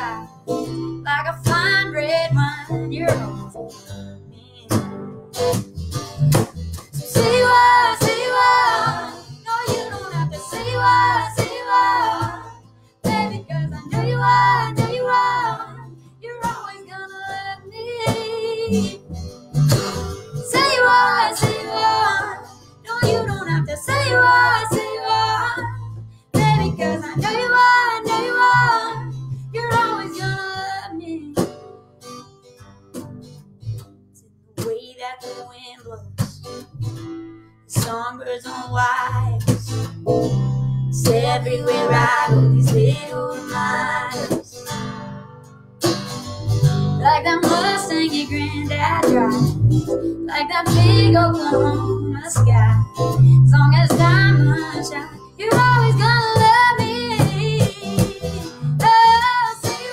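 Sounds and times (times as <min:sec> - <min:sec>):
women singing country song: 0:00.0 - 0:05.1, 0:07.0 - 0:19.1, 0:19.8 - 0:31.8, 0:34.6 - 0:36.6, 0:37.7 - 0:45.5, 0:46.8 - 0:59.9
guitar accompaniment: 0:00.0 - 0:59.9.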